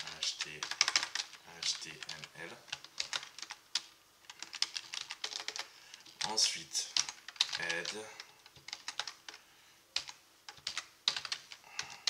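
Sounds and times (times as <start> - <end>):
computer keyboard typing: 0.0 - 9.4, 10.0 - 12.0.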